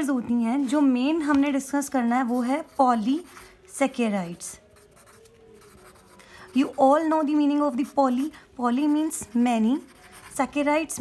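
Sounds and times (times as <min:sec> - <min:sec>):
pencil scratching on paper: 0:01.9 - 0:03.7, 0:04.6 - 0:11.0.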